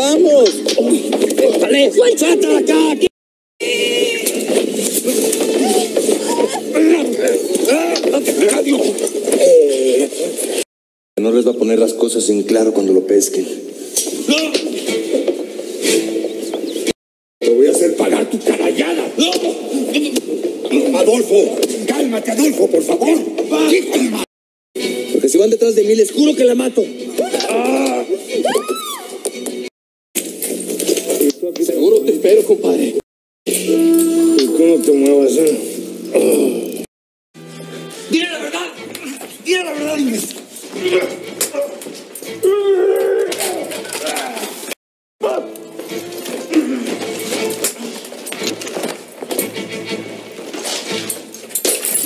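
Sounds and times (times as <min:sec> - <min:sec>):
indistinct voices: 0:00.0 - 0:10.3, 0:26.6 - 0:29.1, 0:33.5 - 0:36.9
men shouting and grunting: 0:01.4 - 0:10.1, 0:27.1 - 0:29.2, 0:38.8 - 0:44.6.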